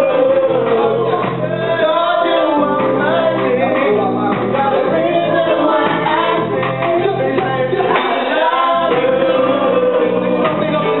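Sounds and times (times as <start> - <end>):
live band playing reggae: 0.0 - 11.0
voices singing chorus: 0.0 - 11.0.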